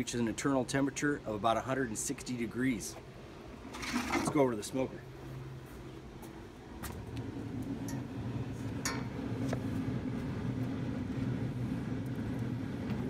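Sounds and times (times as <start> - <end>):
grill fan humming: 0.0 - 13.0.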